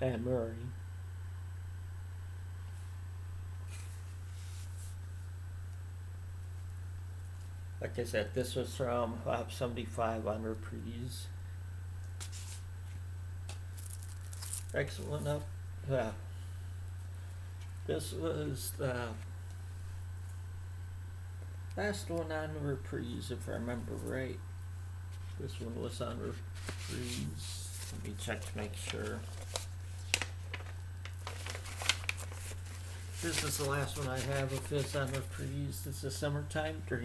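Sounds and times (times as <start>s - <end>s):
steady low hum: 0.0s - 37.0s
record jackets rustling and sliding: 3.6s - 5.3s, 12.0s - 15.4s, 25.1s - 35.8s.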